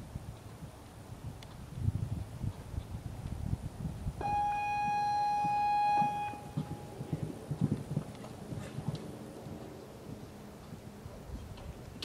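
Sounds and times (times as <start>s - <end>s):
electronic buzzer tone: 4.2s - 6.8s
horse hoofbeats on sand: 4.8s - 12.0s.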